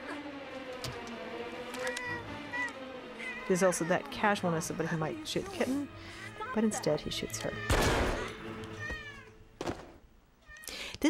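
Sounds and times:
kitten meowing: 1.8s - 3.5s
gunshot ringing: 7.7s - 8.4s.

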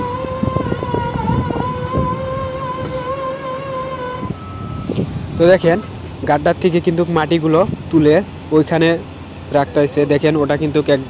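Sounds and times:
engine and winch whine: 0.0s - 11.0s.

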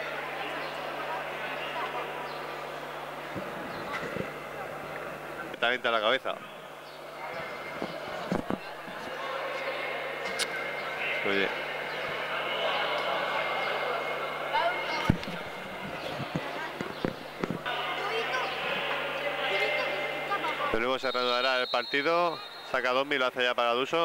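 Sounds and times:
many voices chattering: 0.0s - 24.0s
ball bouncing on court floor: 7.8s - 8.7s, 16.3s - 17.7s.

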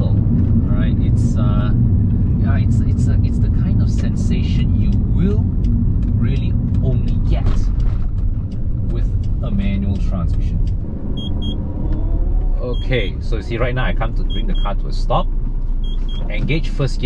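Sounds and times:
car engine rumble: 0.0s - 17.0s
road noise: 0.0s - 17.0s
short high beeps: 11.2s - 11.6s.

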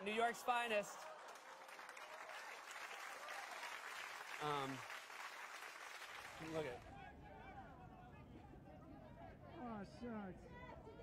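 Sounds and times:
faint audience applause: 0.0s - 6.9s.

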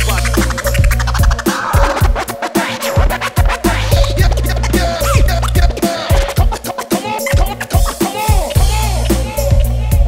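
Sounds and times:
steady bass line: 0.0s - 6.7s, 8.5s - 10.0s
hip hop beat with kick drum: 0.0s - 10.0s
turntable scratching: 0.0s - 10.0s.

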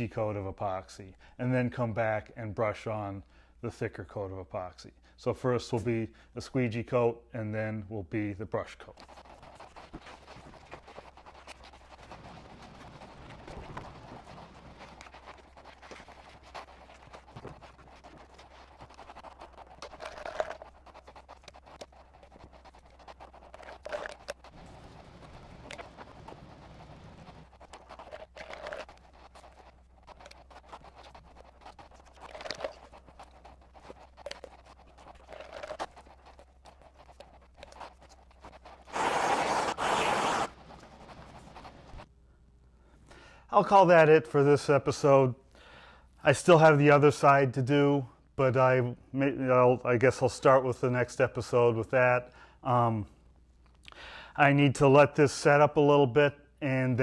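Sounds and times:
applicator scraping on hull: 8.8s - 42.1s
loud rough rustle: 8.9s - 42.1s.

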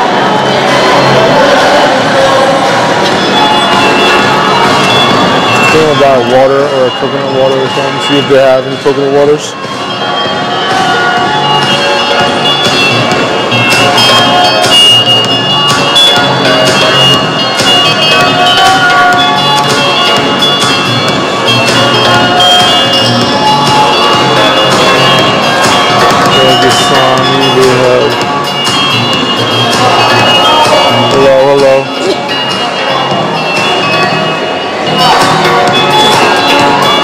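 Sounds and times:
loud music with sharp beats: 0.2s - 6.2s, 9.3s - 37.0s.

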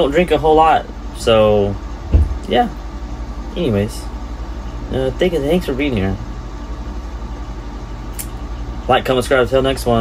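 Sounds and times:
motor humming with fast pulse: 0.9s - 3.4s.

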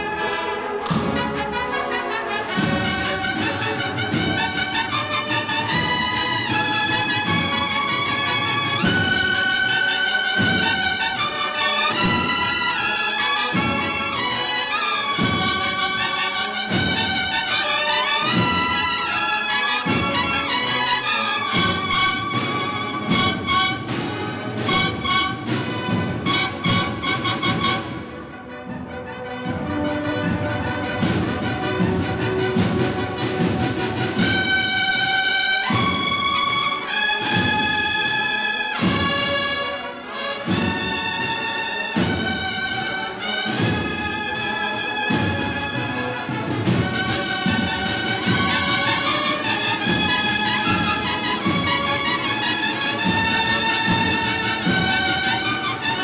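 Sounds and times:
cornets and brass: 0.0s - 56.0s
marching drums: 0.0s - 56.0s.

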